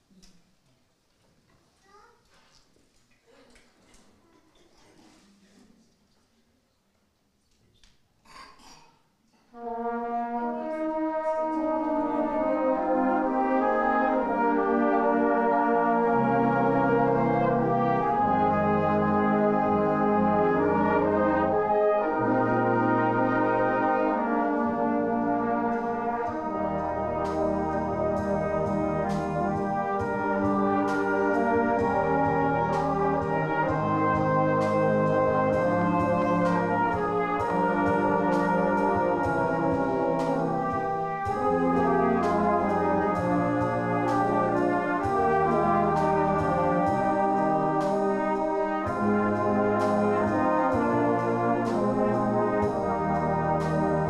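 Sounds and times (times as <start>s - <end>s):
brass band playing: 9.5s - 54.0s.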